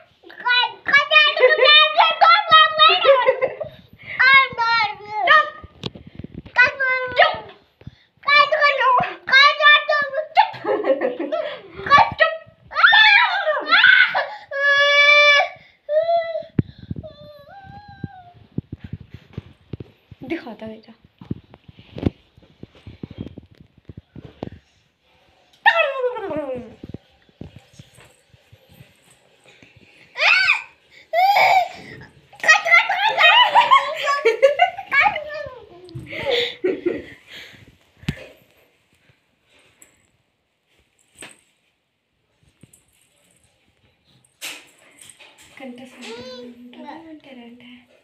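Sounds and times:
toddler shouting angrily: 11.8 - 15.5, 30.2 - 31.7, 32.4 - 34.0
giggling: 36.0 - 37.2.

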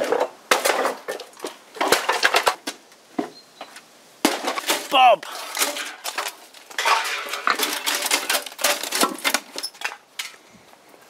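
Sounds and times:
sheet metal clattering: 4.3 - 10.0.

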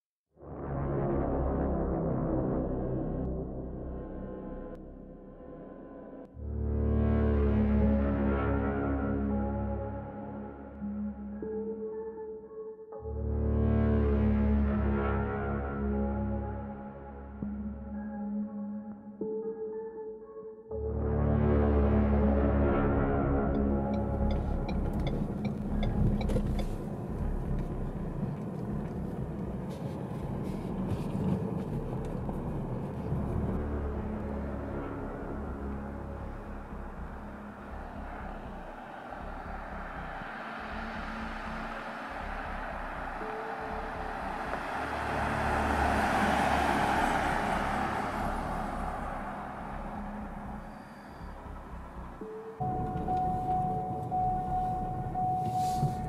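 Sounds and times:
low road rumble: 0.3 - 11.8, 13.0 - 18.6, 20.8 - 56.0
car passing: 23.6 - 56.0.

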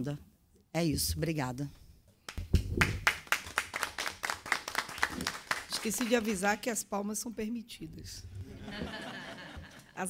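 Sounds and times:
people applauding: 2.8 - 6.4.

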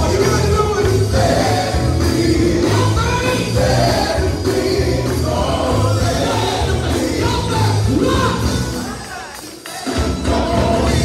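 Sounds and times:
bass guitar: 0.0 - 9.0, 10.2 - 11.0
drums: 0.0 - 11.0
men singing together: 0.0 - 11.0.

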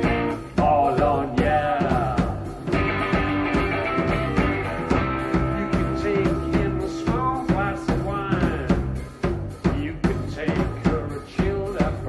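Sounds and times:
electric guitar: 0.0 - 9.8
bass guitar: 0.0 - 12.0
drum kit steady beat: 0.0 - 12.0.

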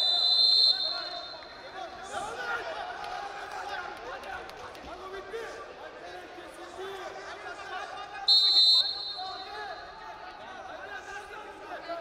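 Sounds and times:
referee's whistle blast: 0.0 - 1.5, 8.3 - 9.8
crowd voices babble: 0.0 - 12.0.

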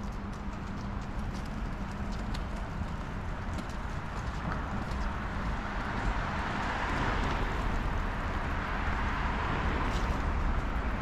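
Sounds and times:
footsteps on pavement: 0.0 - 11.0
street traffic: 0.0 - 11.0
vehicle approaching: 0.0 - 11.0.

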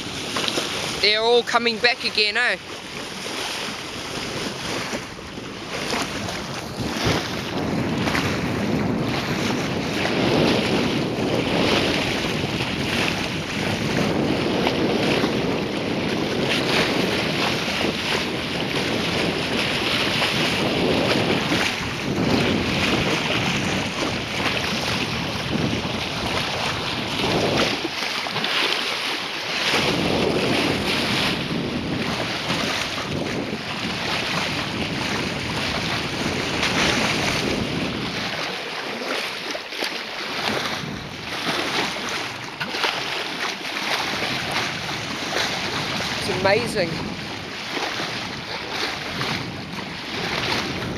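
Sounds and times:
water rushing and splashing: 0.0 - 50.9
wind buffeting microphone: 0.0 - 50.9.

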